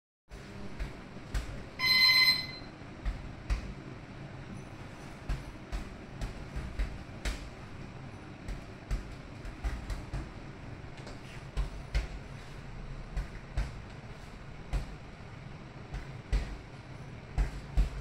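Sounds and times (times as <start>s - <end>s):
punches thudding on punching bag: 0.4s - 1.8s, 3.0s - 3.8s, 5.1s - 12.4s, 13.0s - 15.2s, 15.8s - 18.0s
loud electronic beep: 1.8s - 2.7s.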